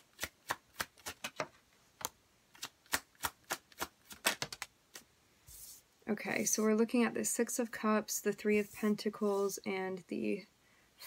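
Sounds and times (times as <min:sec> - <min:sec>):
cards being shuffled: 0:00.2 - 0:05.8.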